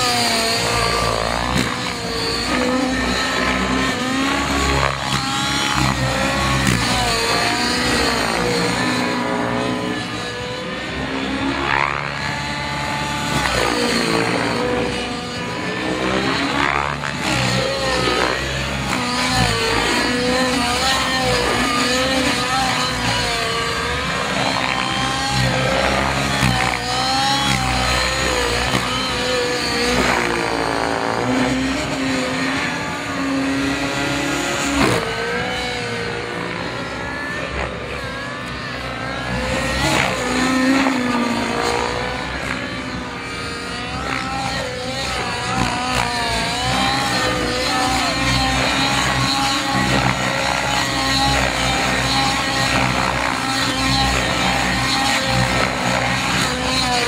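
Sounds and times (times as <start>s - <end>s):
model helicopter engine and rotors: 0.0s - 57.0s.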